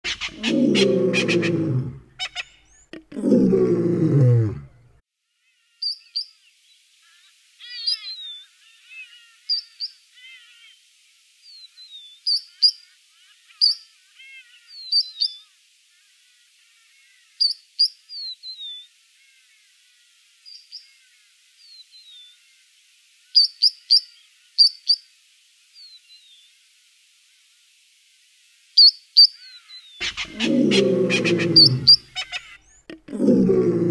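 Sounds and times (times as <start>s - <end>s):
plover calling: 0.0s - 3.4s, 30.0s - 33.9s
loud low falling roar: 0.5s - 2.1s, 3.2s - 4.8s, 30.3s - 32.0s, 33.1s - 33.9s.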